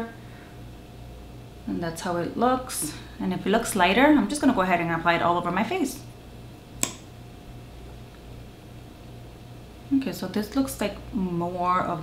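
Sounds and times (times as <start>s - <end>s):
woman's voice: 1.6s - 6.1s, 9.9s - 12.0s.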